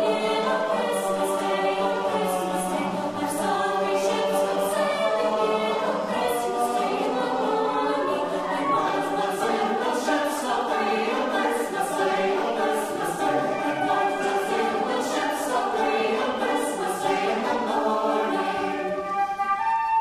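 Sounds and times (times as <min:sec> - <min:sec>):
choir singing in harmony: 0:00.0 - 0:20.0
flute: 0:00.0 - 0:20.0.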